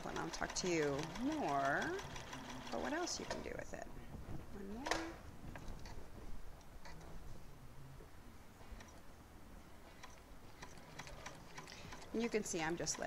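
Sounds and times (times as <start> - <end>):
sewing machine needle ticking: 0.0 - 3.5, 9.9 - 13.0.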